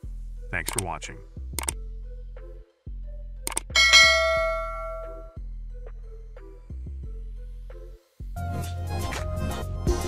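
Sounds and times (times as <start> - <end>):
background music: 0.0 - 10.0
quick clicks: 3.5 - 3.8
bright bell ding: 3.7 - 5.4.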